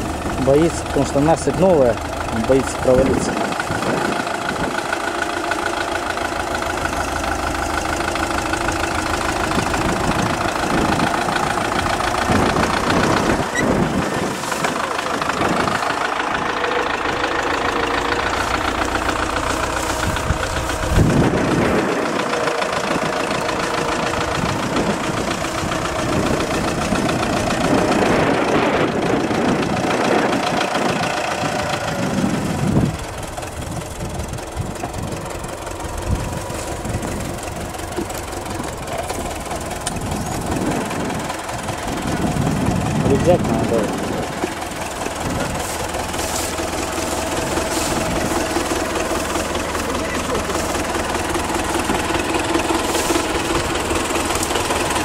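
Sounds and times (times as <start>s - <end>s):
tractor diesel engine running: 0.0s - 55.0s.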